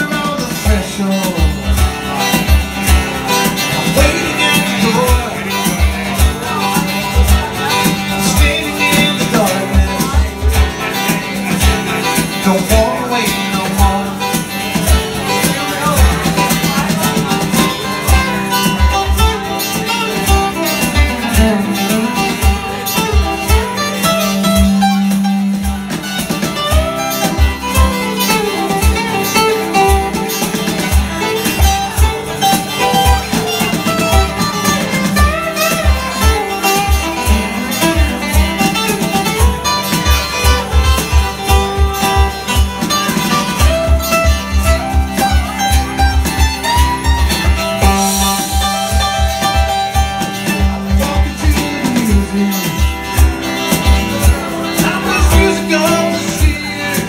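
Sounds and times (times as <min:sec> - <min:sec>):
acoustic guitars playing: 0:00.0 - 0:57.0.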